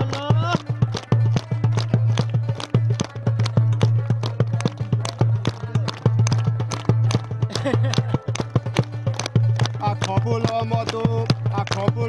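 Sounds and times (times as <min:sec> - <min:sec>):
fast drum beat: 0:00.0 - 0:02.7
crowd clapping in time: 0:00.0 - 0:12.0.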